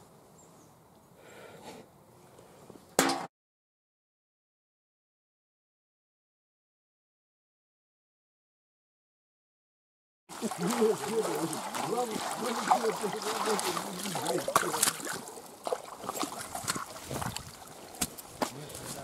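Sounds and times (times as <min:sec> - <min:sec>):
splashing water: 0:10.3 - 0:19.0.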